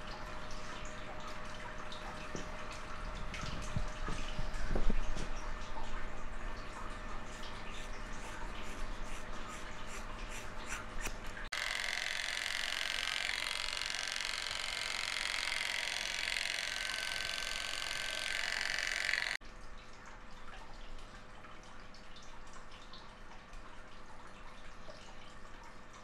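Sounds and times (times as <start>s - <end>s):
razor scraping scalp: 7.3s - 19.4s
scissors snipping hair: 8.2s - 19.4s
electric hair clippers: 11.5s - 19.4s.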